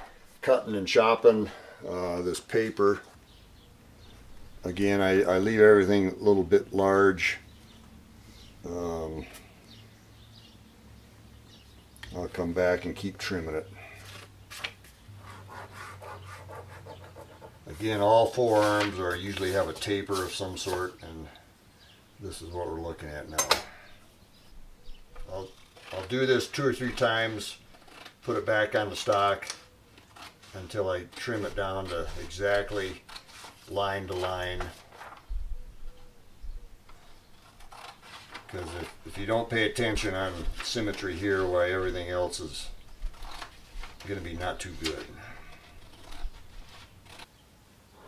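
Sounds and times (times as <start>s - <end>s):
paper rustling and rubbing: 13.8s - 21.0s, 25.4s - 35.4s, 36.9s - 47.3s
scissors cutting paper: 30.0s - 34.3s, 37.4s - 39.0s, 44.8s - 47.3s.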